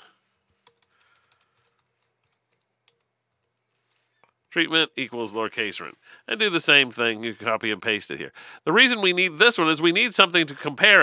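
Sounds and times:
computer keyboard typing: 0.5 - 3.6.

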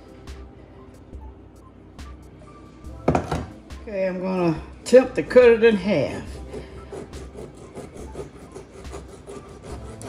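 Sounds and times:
background music with soft beat: 0.0 - 10.0.

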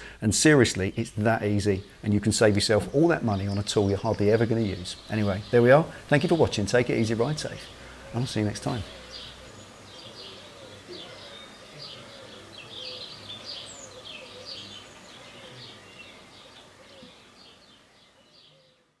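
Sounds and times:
birds chirping: 0.0 - 19.0.

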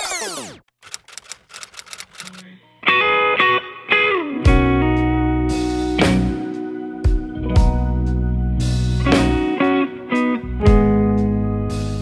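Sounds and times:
typewriter key clacks: 0.8 - 2.4.

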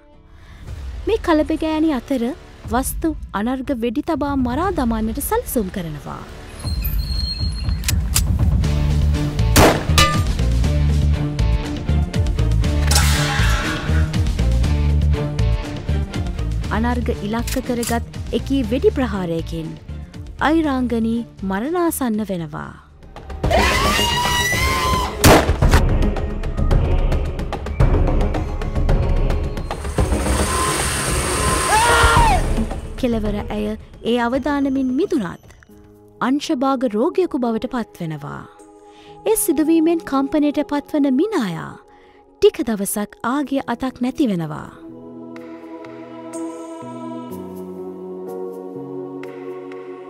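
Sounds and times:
dramatic background music: 0.0 - 50.0
loud metallic clang: 9.6 - 10.4
sharp hits: 9.6 - 10.5
tense dramatic score: 22.8 - 35.9.

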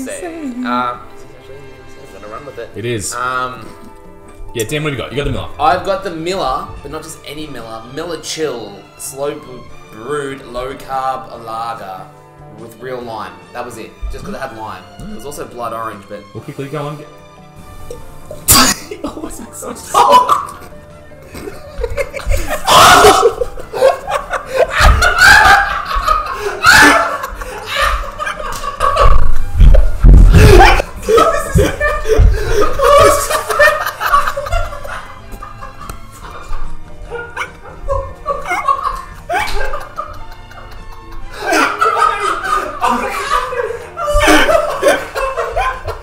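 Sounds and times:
music playing: 0.0 - 46.0
men laughing hard: 18.4 - 46.0
man spluttering cough: 18.5 - 18.9
loud low thuds: 29.5 - 30.8.

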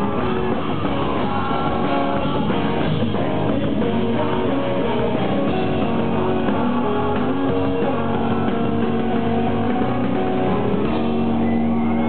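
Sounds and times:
electric guitar chords: 0.0 - 12.0
loud rock band playing: 0.0 - 12.0.

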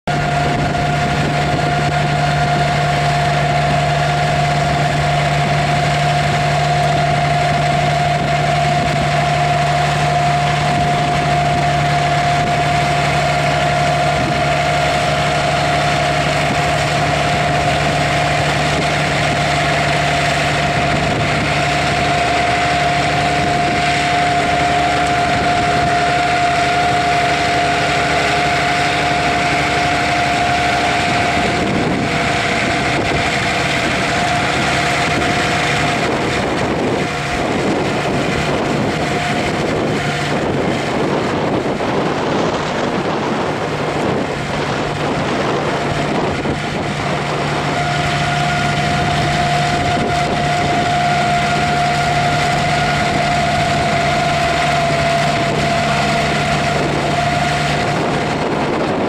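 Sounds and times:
harvester machinery running: 0.0 - 59.0
low drone: 0.0 - 59.0
steady high whine: 0.0 - 59.0
tractor diesel engine under load: 0.0 - 59.0.

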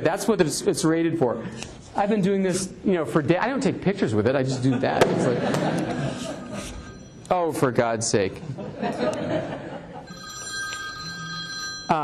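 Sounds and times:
mobile phone ringtone: 10.1 - 12.0.

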